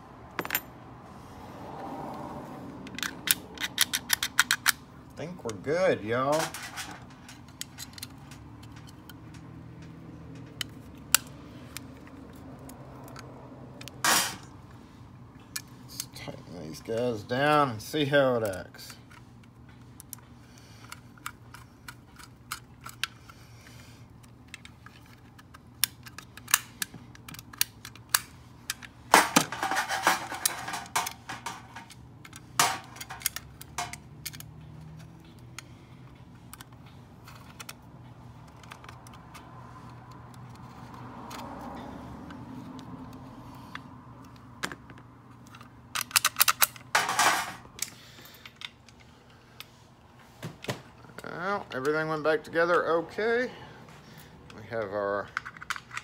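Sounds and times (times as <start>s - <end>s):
screwdriver clicking on metal lock: 2.9s - 4.8s.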